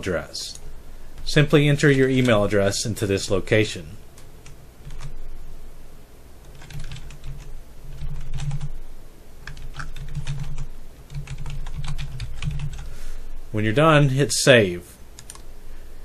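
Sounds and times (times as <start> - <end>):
typing on keyboard: 4.4 - 5.1, 6.4 - 8.7, 9.4 - 12.9, 15.2 - 15.5.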